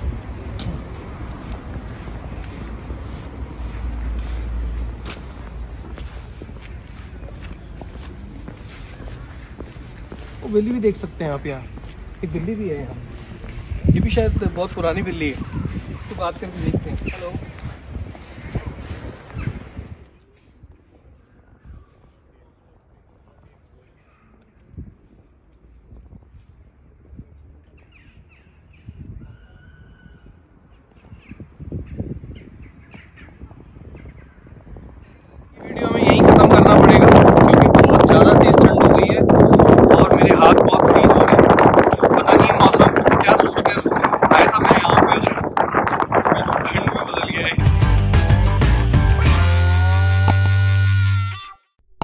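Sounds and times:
footsteps on brick path: 0.0 - 22.3, 24.4 - 27.8
birds calling: 5.9 - 12.5, 18.3 - 19.8
gusting rumble: 34.6 - 47.9.

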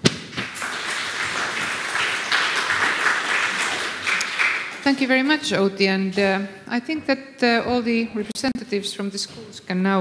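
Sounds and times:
audience applauding: 0.3 - 5.3.

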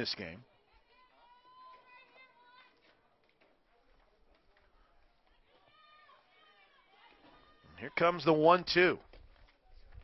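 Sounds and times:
faint distant voices: 0.0 - 9.0.

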